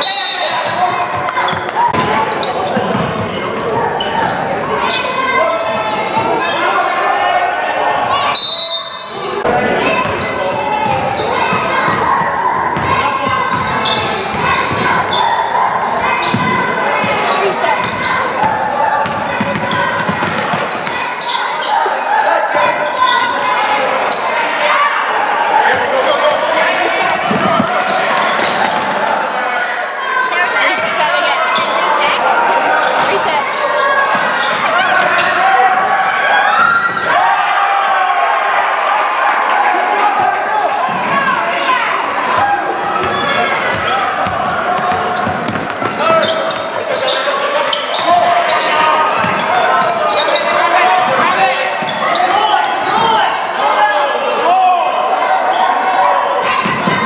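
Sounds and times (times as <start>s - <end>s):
echoing crowd voices: 0.0s - 57.0s
basketball bouncing on hardwood: 43.7s - 46.0s.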